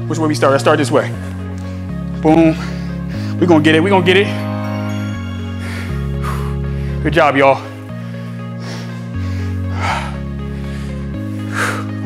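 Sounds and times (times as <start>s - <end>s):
low synth chords music: 0.0s - 12.0s.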